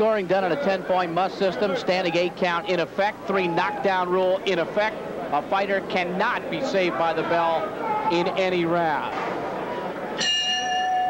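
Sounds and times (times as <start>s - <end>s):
boxing ring bell ringing: 10.2s - 11.0s.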